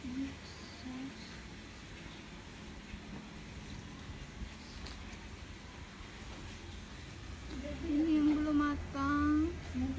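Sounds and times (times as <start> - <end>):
outdoor background noise: 0.0 - 9.9.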